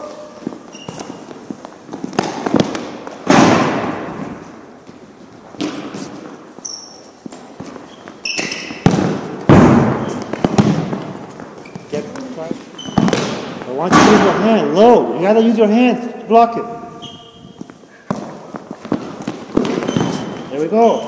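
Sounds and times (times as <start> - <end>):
high squeaks: 0.0 - 1.3, 6.6 - 8.8, 11.6 - 13.2, 16.7 - 17.9, 19.7 - 21.0
ball kicked and bouncing on floor: 0.7 - 6.0, 7.2 - 14.4, 17.6 - 20.5.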